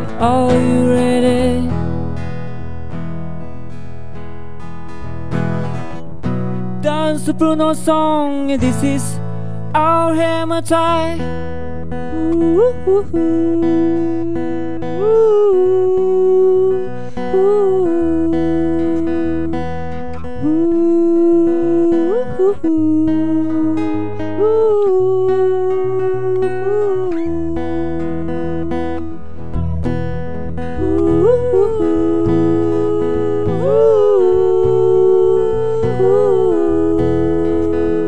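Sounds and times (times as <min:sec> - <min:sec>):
man singing wordless melody: 0:00.0 - 0:02.0, 0:06.8 - 0:11.4, 0:12.0 - 0:29.4, 0:30.7 - 0:38.0
acoustic guitar strumming: 0:00.0 - 0:38.0.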